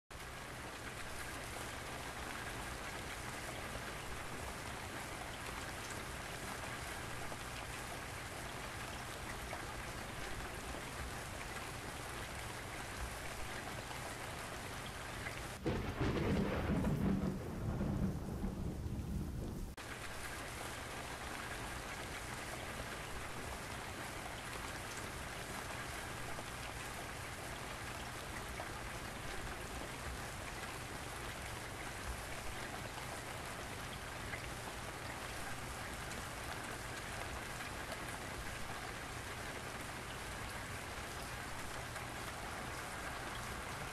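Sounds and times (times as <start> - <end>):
rain hissing: 15.4 - 21.4.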